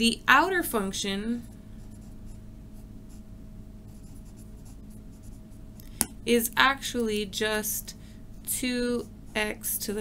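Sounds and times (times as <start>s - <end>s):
steady low hum: 0.0s - 10.0s
pen scratching on paper: 3.9s - 5.4s.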